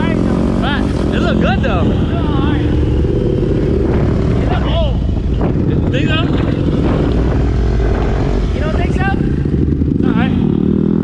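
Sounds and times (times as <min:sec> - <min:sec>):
dirt bike engines droning: 0:00.0 - 0:11.0.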